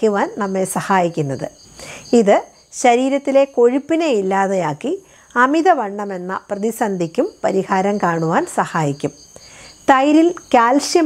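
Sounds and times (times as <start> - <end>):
woman talking: 0.0 - 9.2, 9.8 - 11.0
night insects chirring: 0.0 - 11.0.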